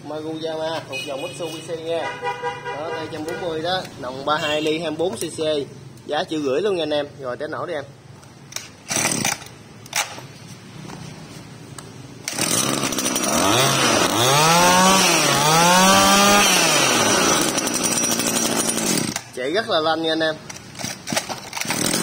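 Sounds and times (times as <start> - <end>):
brush cutter engine revving: 8.9 - 9.4, 12.2 - 19.3, 20.8 - 22.0.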